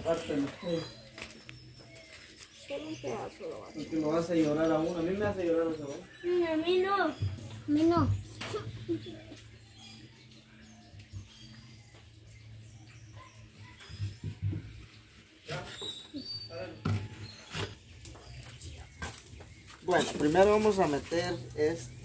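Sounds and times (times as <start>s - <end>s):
faint bird chirps: 0.0s - 22.0s.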